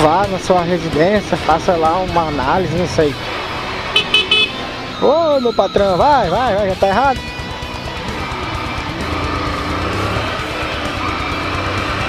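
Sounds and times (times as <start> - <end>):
motorcycle wind and road noise: 0.0 - 12.0
high-pitched horn toots: 4.0 - 4.7.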